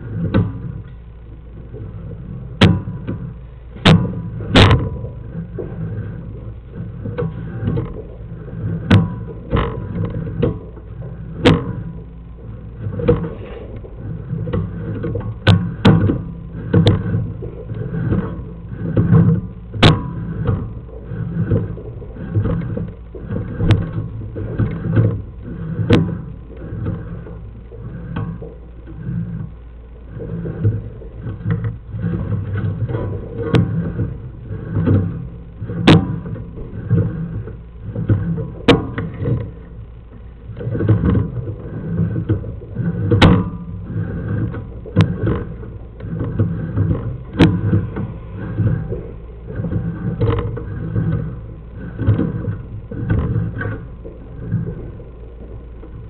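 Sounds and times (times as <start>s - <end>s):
camera scraping along pipe: 0.0s - 56.0s
steady low hum: 0.0s - 56.0s.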